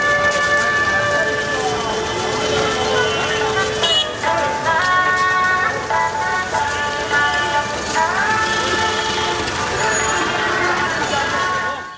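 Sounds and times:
crowd voices: 0:00.0 - 0:11.9
music of long held notes: 0:00.0 - 0:11.9
road traffic: 0:00.0 - 0:11.9.

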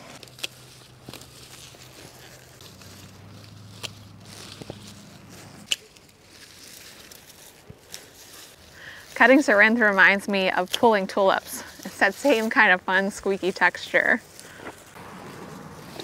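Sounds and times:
foliage rustling: 0:00.0 - 0:16.0
pruning snips clicking: 0:02.6 - 0:06.1.

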